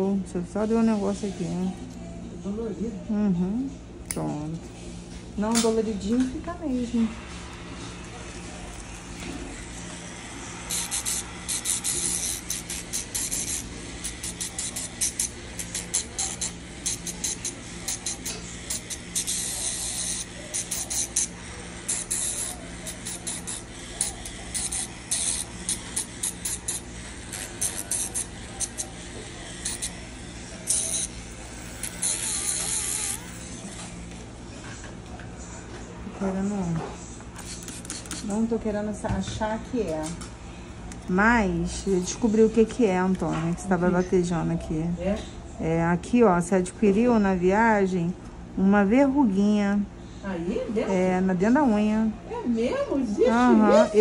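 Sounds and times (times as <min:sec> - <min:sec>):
electric nail drill humming: 0:08.7 - 0:33.9, 0:37.4 - 0:38.6
disc grinding toenail: 0:10.5 - 0:33.6.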